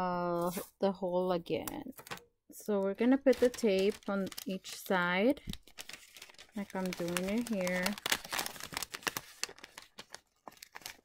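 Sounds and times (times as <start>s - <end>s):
paper bag crinkling: 3.2s - 11.0s.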